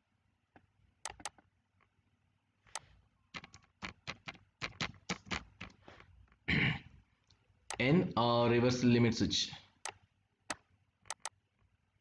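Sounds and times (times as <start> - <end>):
computer mouse clicks: 0.6 - 1.9, 2.7 - 5.8, 9.8 - 11.4
keystrokes on keyboard: 1.0 - 1.5, 2.7 - 5.8, 9.8 - 11.4.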